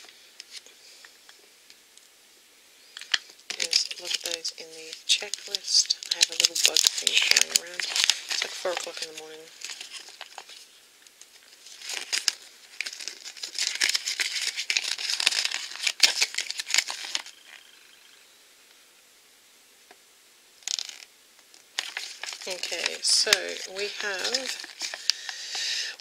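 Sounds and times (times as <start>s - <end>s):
paper packaging crinkling: 2.9s - 17.8s, 20.7s - 26.0s.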